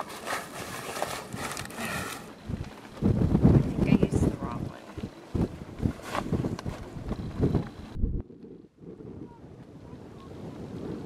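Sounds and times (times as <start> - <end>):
sailcloth rustling and scraping: 0.0 - 3.0, 4.8 - 7.9.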